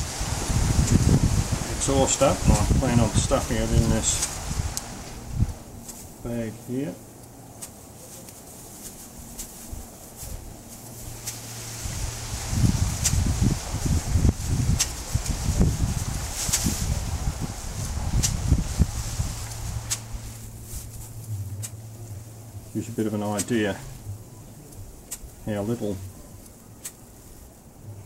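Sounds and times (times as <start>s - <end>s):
steady low hum: 0.0s - 28.0s.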